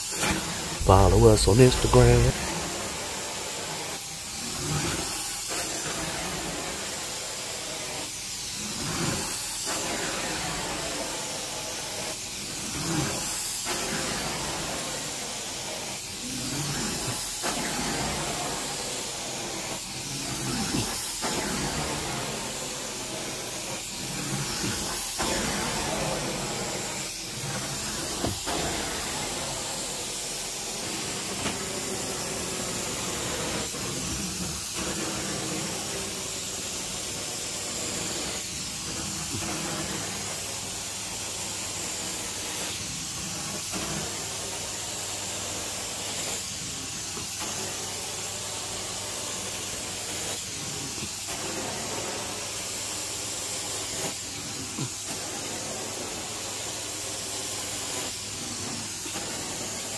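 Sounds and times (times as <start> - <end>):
carpet extraction wand hissing: 13.3 - 59.9.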